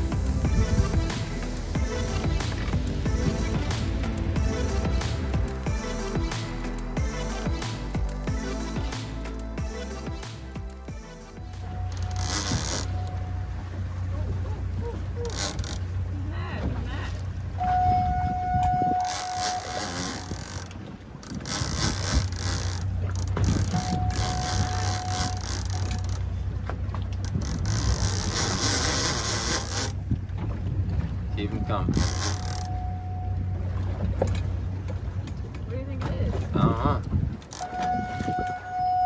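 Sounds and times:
low rumble: 0.0 - 28.6
fishing reel ratcheting: 11.6 - 13.2, 15.2 - 15.9, 19.0 - 26.3, 27.2 - 30.0, 31.9 - 32.8
wind buffeting microphone: 12.5 - 32.6, 33.4 - 39.0.

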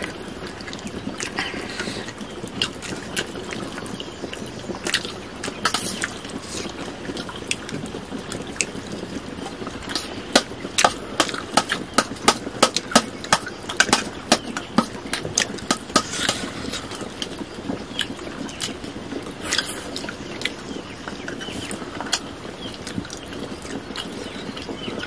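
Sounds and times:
wet chewing mouth clicks: 0.0 - 7.8, 8.4 - 8.8, 19.4 - 20.6.

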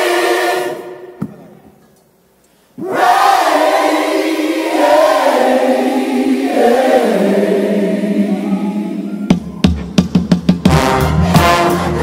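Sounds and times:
choir singing in harmony: 0.0 - 1.2, 2.8 - 9.4.

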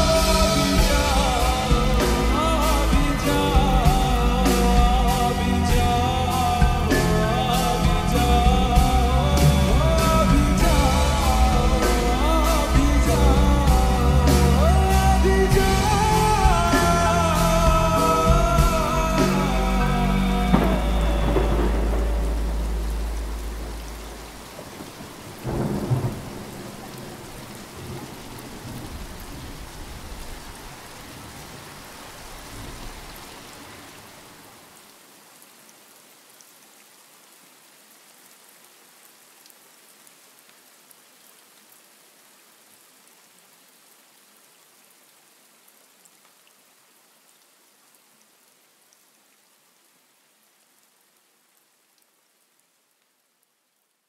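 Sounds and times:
lofi song: 0.0 - 27.0
thunderclap rumbling: 0.0 - 30.6
steady rain: 0.0 - 54.0.

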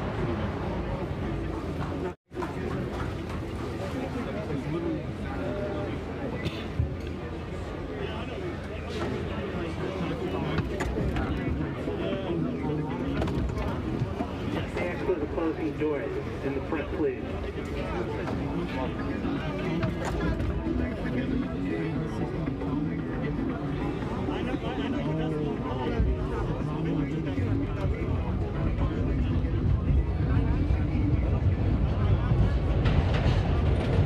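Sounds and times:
people chattering: 0.0 - 34.0
background music: 17.2 - 34.0.

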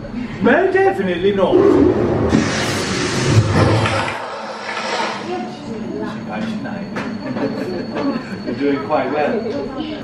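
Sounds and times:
low rumble: 1.4 - 6.0
rushing rattling noise: 1.5 - 5.7.

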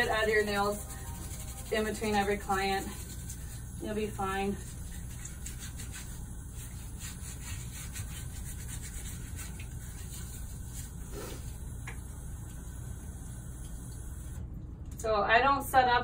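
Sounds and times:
nail brush bristles rasping: 0.0 - 11.4.

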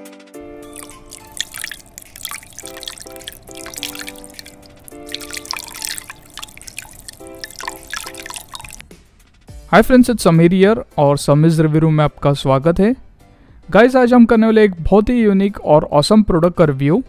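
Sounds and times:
water dripping on metal: 0.7 - 8.8.

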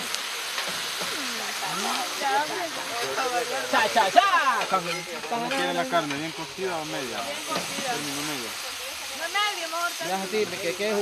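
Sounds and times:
meat sizzling on griddle: 0.0 - 11.0.

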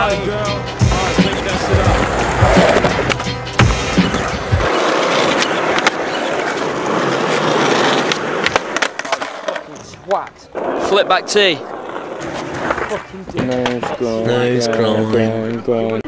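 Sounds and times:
hip-hop music with heavy beat: 0.0 - 5.3
skateboard wheels rolling on concrete: 0.0 - 16.0
skateboard clacks and knocks: 1.6 - 10.9, 11.7 - 14.9.

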